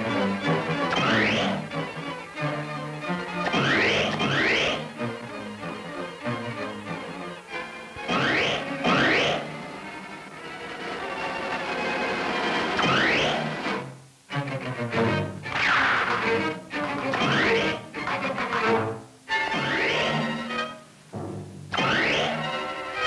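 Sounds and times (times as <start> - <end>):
dramatic orchestral strings: 0.0 - 23.0.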